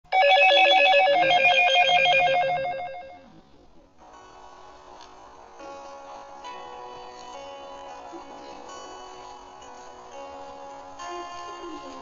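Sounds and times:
electronic ringing tone: 0.1 - 3.3.

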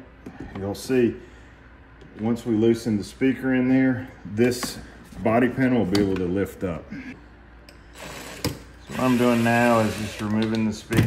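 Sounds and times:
cordless driver running: 7.9 - 10.6.

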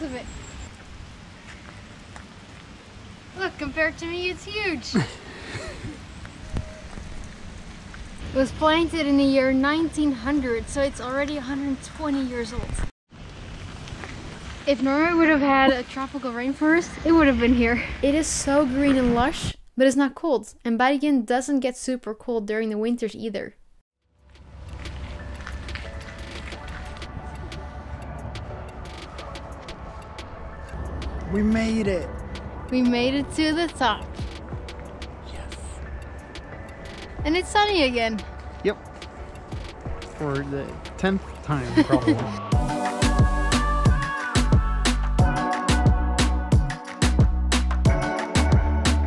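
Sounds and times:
rain falling in a forest: 0.0 - 9.8, 13.1 - 18.8
person laughing: 4.9 - 6.0, 41.5 - 42.5.

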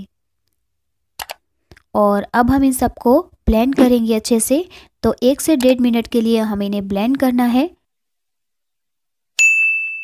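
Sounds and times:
bright bell-like ding: 9.4 - 10.0.

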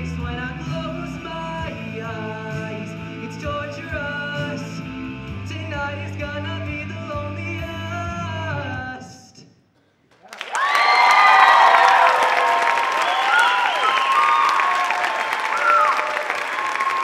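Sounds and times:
music: 0.0 - 9.3
audience applause: 10.1 - 17.0
crowd cheering and whooping: 10.2 - 17.0.

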